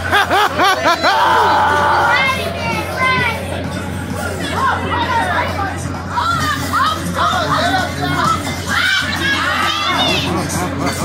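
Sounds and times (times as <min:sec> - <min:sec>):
steady low hum: 0:00.0 - 0:08.8
crowd chatter: 0:00.0 - 0:11.0
high-pitched voices calling out: 0:01.0 - 0:03.6.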